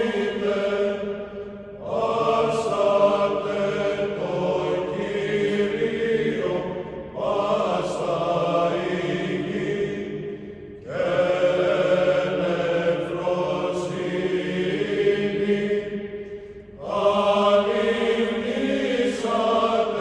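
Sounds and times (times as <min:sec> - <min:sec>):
choir chanting held notes: 0:00.0 - 0:20.0.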